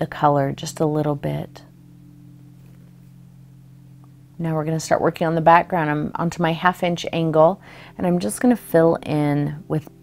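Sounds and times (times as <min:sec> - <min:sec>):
low equipment hum: 0:00.0 - 0:10.0.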